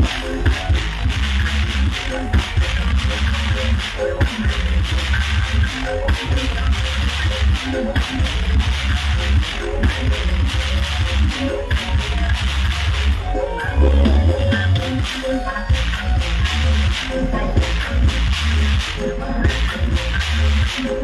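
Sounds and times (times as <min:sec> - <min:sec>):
loud dance music with heavy bass: 0:00.0 - 0:21.0.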